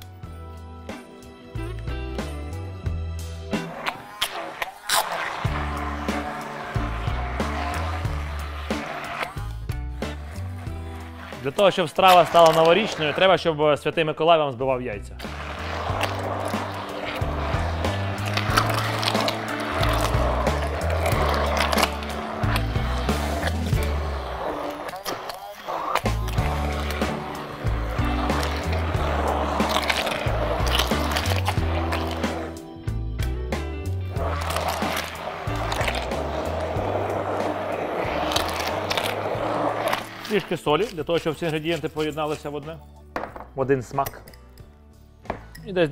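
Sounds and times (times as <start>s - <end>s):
background music with bass line: 0.0s - 3.9s, 4.9s - 11.5s, 14.8s - 24.6s, 25.9s - 40.2s
immersion blender running: 3.8s - 13.2s, 15.2s - 32.4s, 34.2s - 40.3s.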